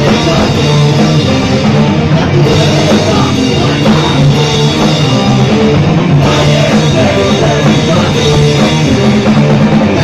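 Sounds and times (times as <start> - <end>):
drum kit: 0.0 - 10.0
electric guitars: 0.0 - 10.0.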